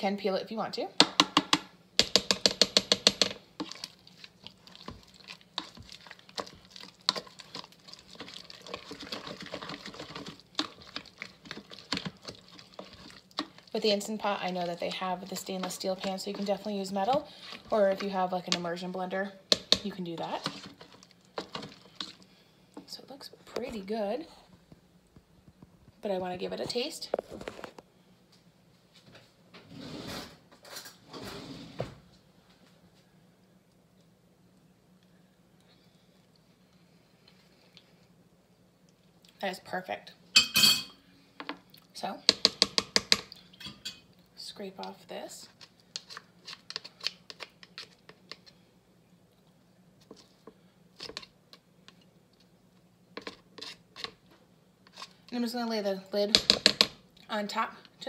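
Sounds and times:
potatoes squelching: 0:02.1 - 0:23.0
kitchen scraping and rustling: 0:02.3 - 0:22.2, 0:26.5 - 0:27.8, 0:29.0 - 0:32.1, 0:53.2 - 0:55.3.

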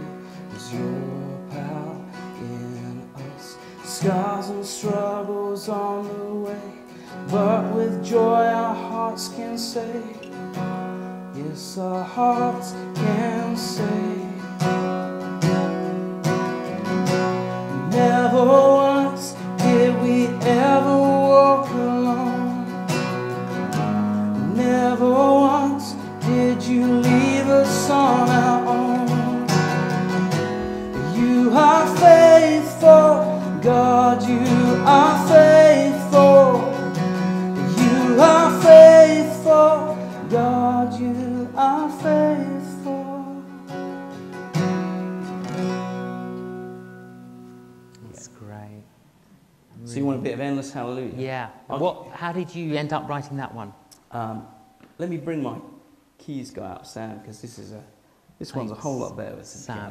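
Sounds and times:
man singing: 0:00.0 - 0:10.4, 0:11.3 - 0:14.8, 0:17.6 - 0:23.1, 0:23.8 - 0:43.7
strummed acoustic guitar: 0:00.0 - 0:48.4.

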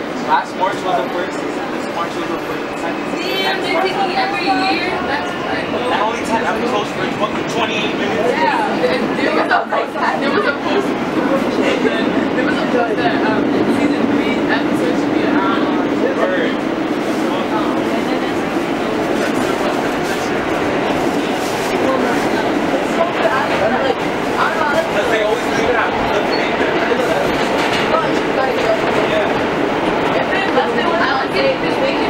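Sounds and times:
faint passengers' voices: 0:00.0 - 0:32.0
subway wheels rumbling on rail: 0:00.0 - 0:32.0.

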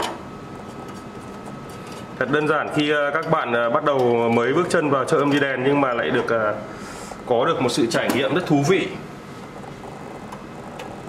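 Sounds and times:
amplifier hiss: 0:04.7 - 0:11.0.

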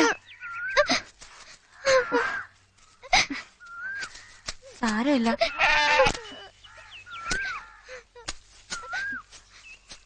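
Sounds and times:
goat bleating: 0:05.4 - 0:06.8.

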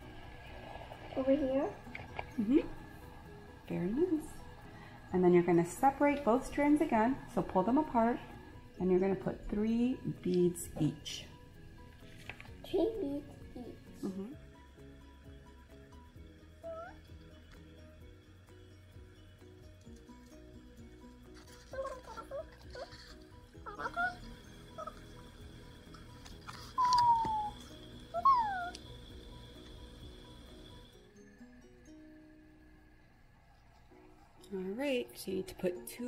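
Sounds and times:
light background music: 0:00.0 - 0:36.0
short high squeaky calls: 0:26.7 - 0:28.8.

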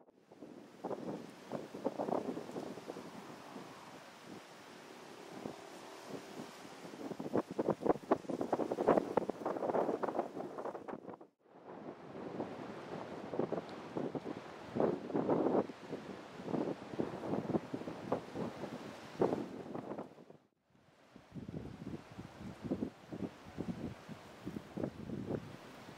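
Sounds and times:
gusty wind on microphone: 0:00.1 - 0:20.4, 0:21.3 - 0:25.9.

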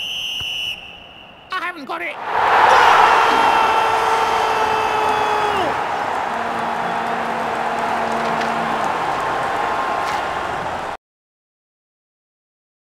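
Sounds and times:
stadium crowd roar: 0:02.1 - 0:11.0.

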